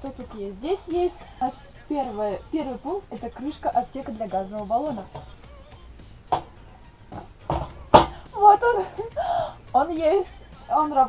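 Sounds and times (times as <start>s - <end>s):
stove cover knocks and clicks: 6.3s - 8.3s.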